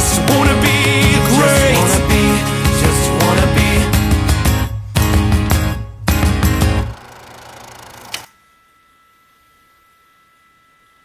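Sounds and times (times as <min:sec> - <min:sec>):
faint high whine: 0:08.1 - 0:11.0.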